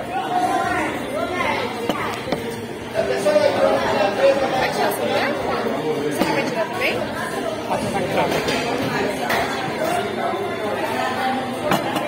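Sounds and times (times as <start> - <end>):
overlapping conversation of diners: 0.0 - 12.0.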